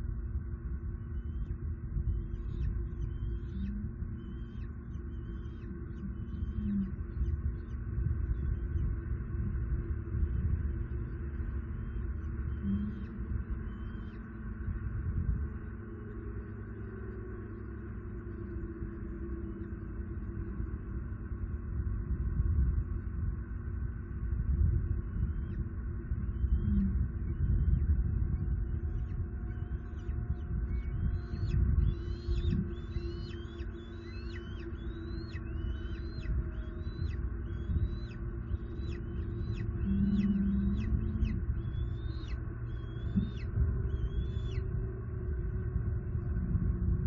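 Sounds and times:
low rumble: 0.0s - 47.0s
eagle calling: 29.0s - 44.6s.

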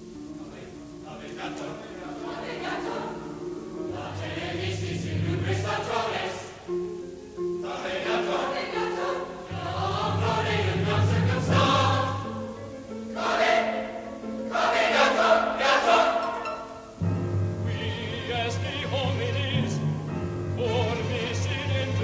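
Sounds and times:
choir singing: 0.1s - 22.0s.

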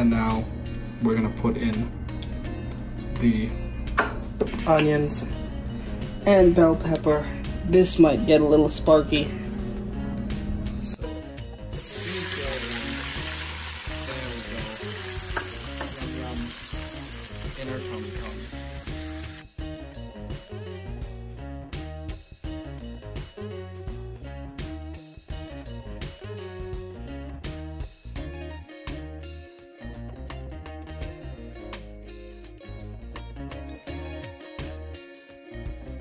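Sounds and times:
background music: 0.0s - 36.0s
vegetables sizzling in oil: 11.8s - 19.4s.

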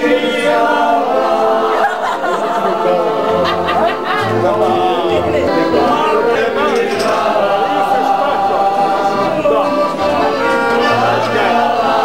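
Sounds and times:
group of people singing: 0.0s - 12.0s.

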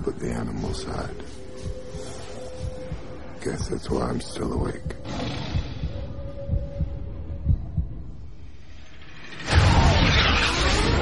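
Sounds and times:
heartbeat thuds: 0.0s - 8.5s.

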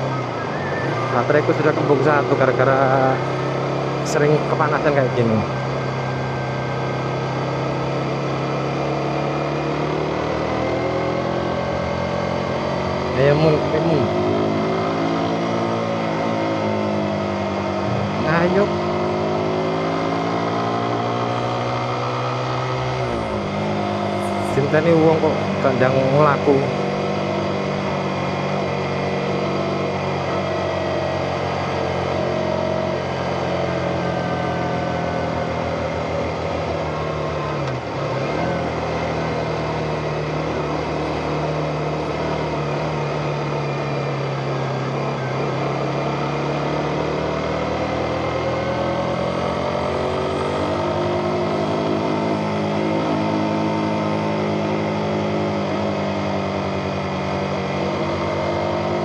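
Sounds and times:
motorcycle engine running: 0.0s - 59.0s.

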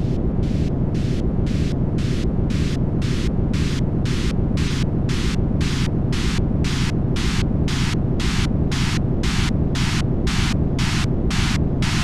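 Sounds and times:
dark ambient noise music: 0.0s - 12.0s.

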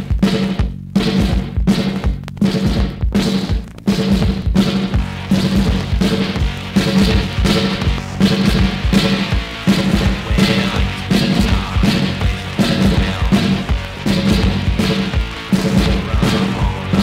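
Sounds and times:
drum kit: 0.0s - 17.0s
punk band playing driving riff: 0.0s - 17.0s.

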